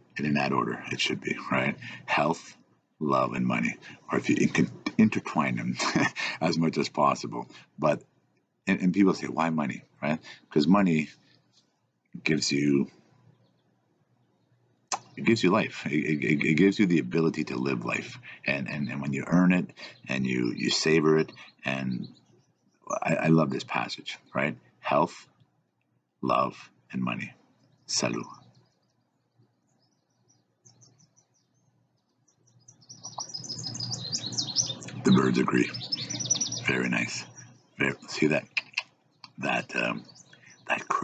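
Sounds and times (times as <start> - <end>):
man talking: 0.0 - 8.0, 8.7 - 11.1, 12.2 - 12.9, 14.9 - 22.1, 22.9 - 25.2, 26.2 - 27.3, 27.9 - 28.3, 34.8 - 40.0, 40.7 - 41.0
faint background hiss: 0.0 - 8.1, 8.7 - 13.3, 26.2 - 30.8, 33.0 - 41.0
songbirds chirping: 0.0 - 41.0.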